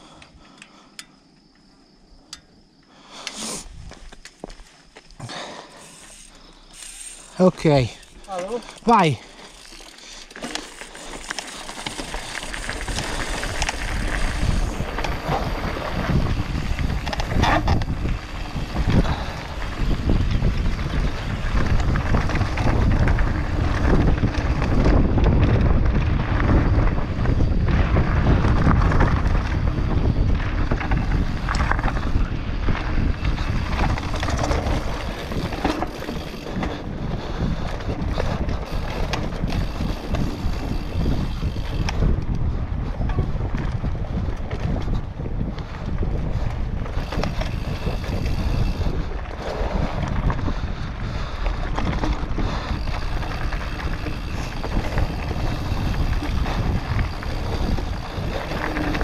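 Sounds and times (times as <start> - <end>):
tyres rolling over dirt: 3.6 - 59.0
wind buffeting microphone: 5.2 - 59.0
bike knocks and rattles: 30.4 - 36.8, 51.3 - 59.0.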